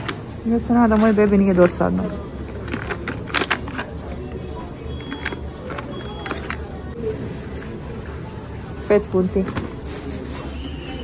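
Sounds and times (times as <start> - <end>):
low shop background rumble: 0.0 - 11.0
packaging clicks and taps: 2.6 - 4.3, 5.0 - 6.7.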